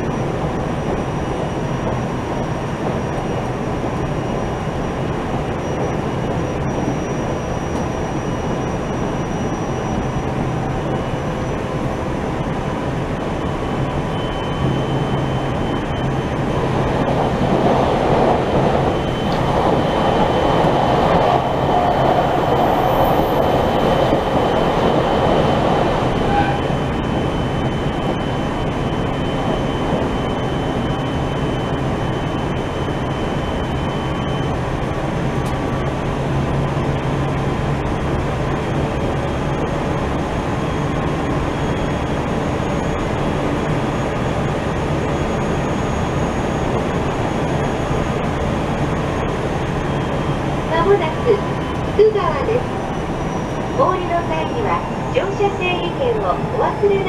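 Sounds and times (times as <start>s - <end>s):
train wheels rumbling on rail: 0.0s - 57.0s.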